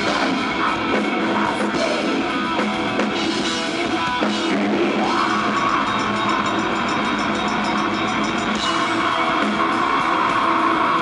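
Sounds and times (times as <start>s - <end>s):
metal band playing: 0.0s - 11.0s.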